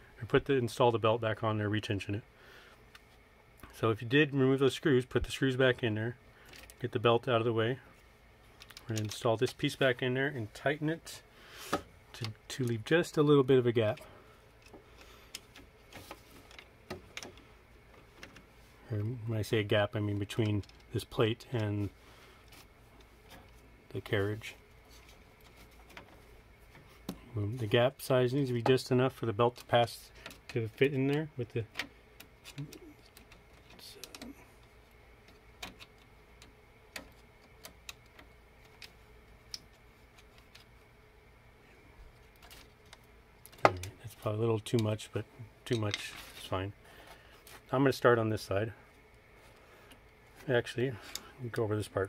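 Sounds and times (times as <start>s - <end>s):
faint steady hum: 0.0s - 52.0s.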